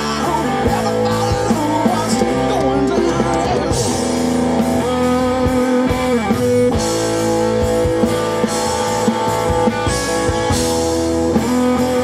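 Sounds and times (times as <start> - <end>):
bass guitar: 0.0 - 12.0
drums: 0.0 - 12.0
electric guitar long ringing notes: 0.0 - 12.0.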